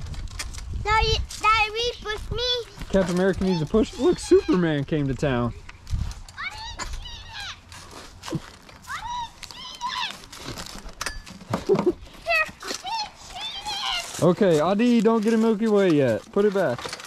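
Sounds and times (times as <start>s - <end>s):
children calling and shouting: 0.8s - 4.8s, 6.2s - 10.5s, 11.6s - 15.4s.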